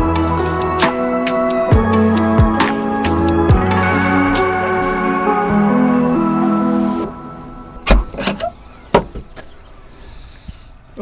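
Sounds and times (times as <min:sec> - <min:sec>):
background music: 0:00.0 - 0:08.9.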